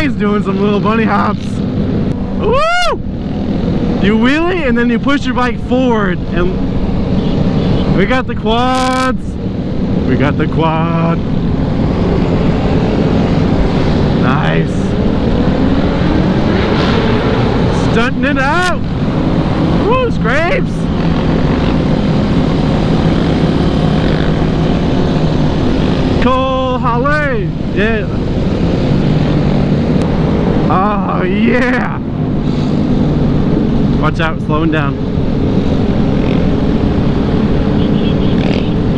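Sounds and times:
motorcycle engines cruising: 0.0 - 38.9
wind rush on microphone: 0.0 - 38.9.

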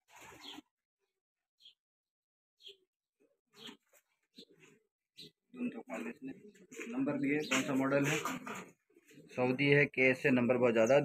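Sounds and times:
pigeons calling: 0.1 - 0.7, 3.5 - 9.8.

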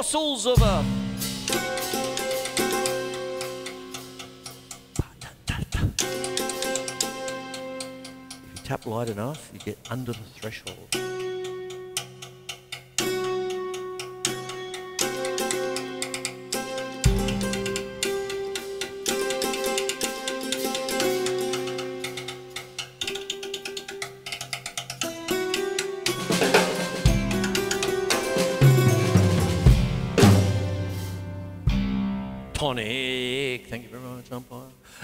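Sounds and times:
drum hits: 0.6 - 5.0, 15.0 - 19.8, 25.1 - 32.7
hammered dulcimer notes: 0.6 - 5.3, 6.0 - 32.7.

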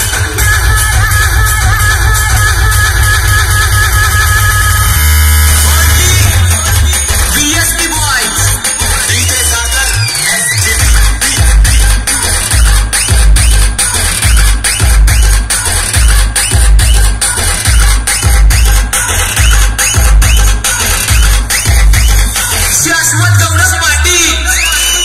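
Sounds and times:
loud electronic dance music: 0.0 - 25.0.

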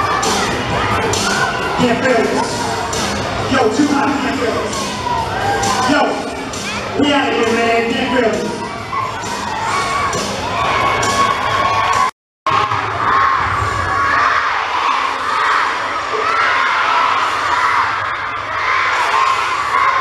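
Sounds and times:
children cheering and shouting: 0.0 - 20.0.

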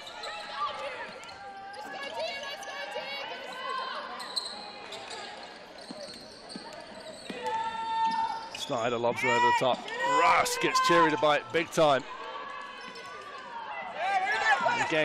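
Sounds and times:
voices echoing in a hall: 0.0 - 15.0.

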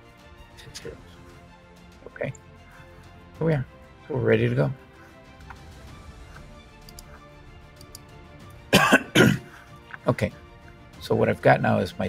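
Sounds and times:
faint background music: 0.0 - 12.0
faint clicks: 6.3 - 7.1
man coughing: 8.7 - 9.6.

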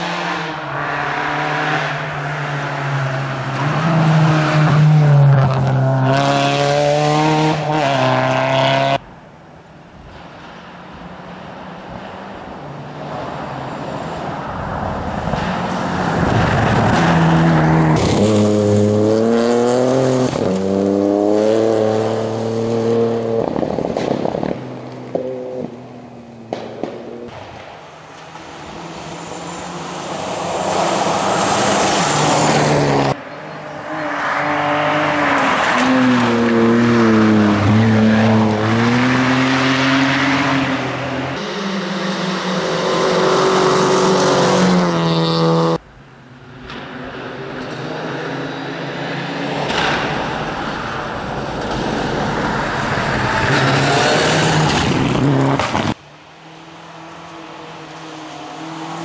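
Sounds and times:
rally car engines revving: 0.0 - 9.0, 11.2 - 27.3, 27.9 - 59.0.

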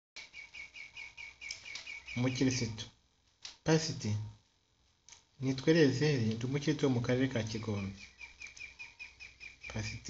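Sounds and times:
bird chirping quickly: 0.2 - 2.7, 7.6 - 10.0.

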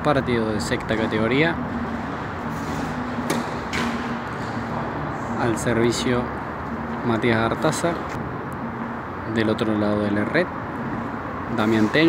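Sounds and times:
tennis racket hitting ball: 3.2 - 4.2.

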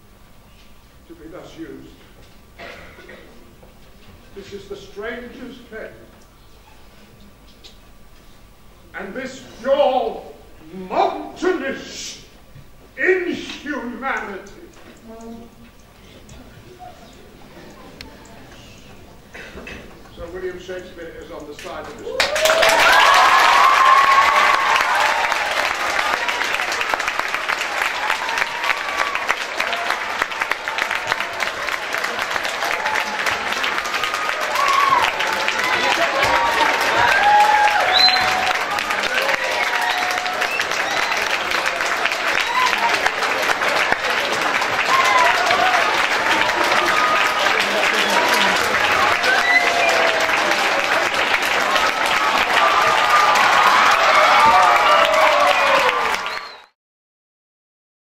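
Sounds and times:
audience applause: 21.6 - 56.8
people cheering and calling out: 22.0 - 26.6, 27.7 - 56.6.

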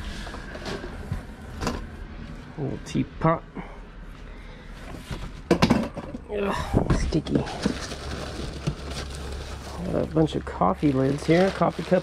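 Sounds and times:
cardboard rustling: 7.2 - 12.0
plastic bag crinkling: 7.3 - 12.0.

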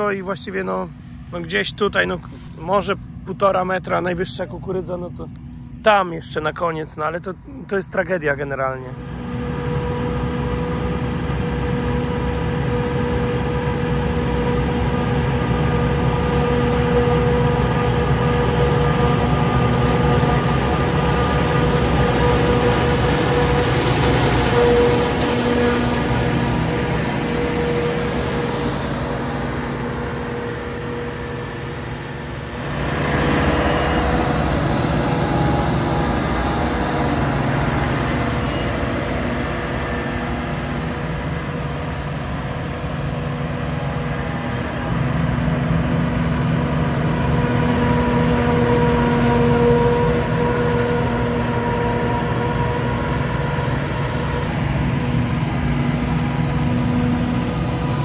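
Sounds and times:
farm machinery engine droning: 0.0 - 58.0.

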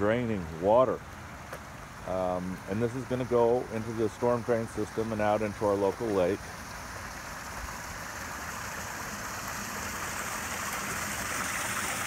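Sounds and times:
water running along gutter: 0.0 - 12.0.

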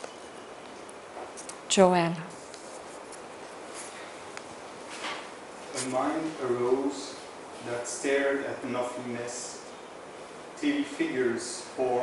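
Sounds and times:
faint steady hiss: 0.0 - 12.0
person speaking: 5.7 - 9.7.

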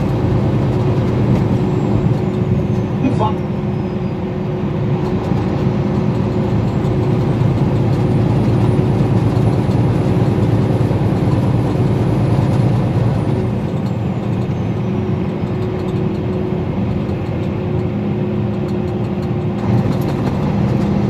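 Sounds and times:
engine and road noise: 0.0 - 21.0.

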